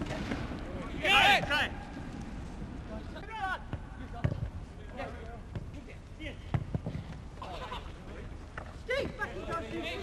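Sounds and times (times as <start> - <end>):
football being kicked: 3.6 - 4.5.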